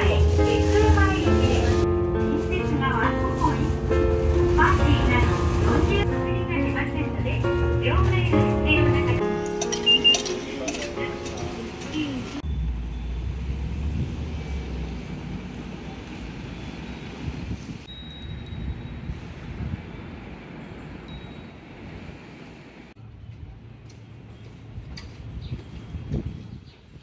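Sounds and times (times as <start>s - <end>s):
bus interior rumble: 0.0s - 17.9s
low traffic rumble: 0.0s - 27.0s
bell-like chime melody: 9.5s - 11.7s, 12.4s - 13.7s, 17.9s - 19.1s.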